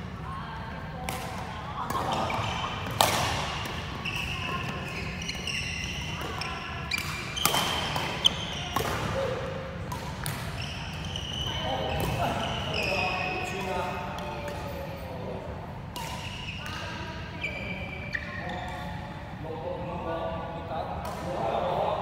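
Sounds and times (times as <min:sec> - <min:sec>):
rackets striking shuttlecock: 0:01.0 - 0:14.7, 0:15.9 - 0:16.9
shoes squeaking on wooden floor: 0:04.0 - 0:06.6, 0:10.6 - 0:13.3.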